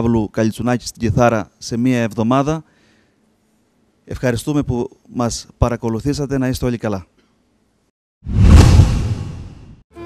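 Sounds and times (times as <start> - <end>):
whoosh with deep rumble and hiss: 8.3 - 9.8.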